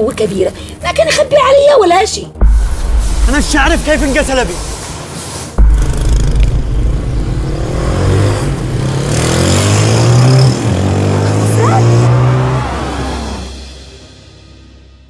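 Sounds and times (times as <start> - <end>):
loud rumble: 2.4 - 11.4
motorcycle engine revving: 5.6 - 13.7.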